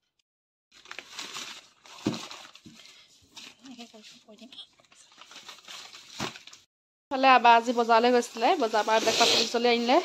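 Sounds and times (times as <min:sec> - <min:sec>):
newspaper rustling: 0:00.7 - 0:06.7.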